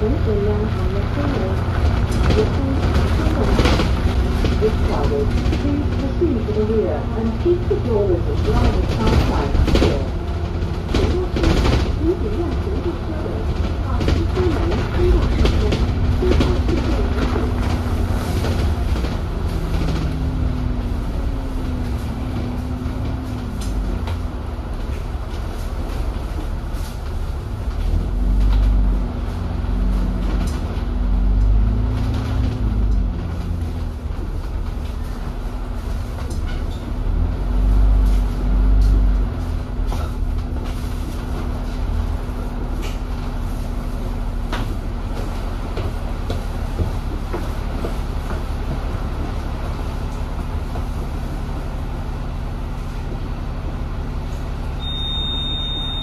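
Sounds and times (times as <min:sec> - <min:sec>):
bus engine rumble: 0:00.0 - 0:56.0
road noise: 0:00.0 - 0:56.0.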